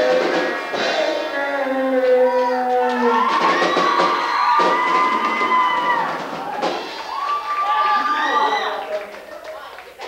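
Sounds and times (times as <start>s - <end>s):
high-pitched yells: 0.0s - 8.8s
audience cheering and shouting: 0.0s - 9.1s.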